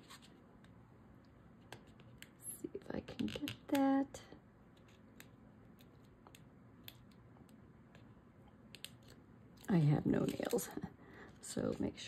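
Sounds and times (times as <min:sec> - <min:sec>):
person's voice: 0:09.6 - 0:12.0.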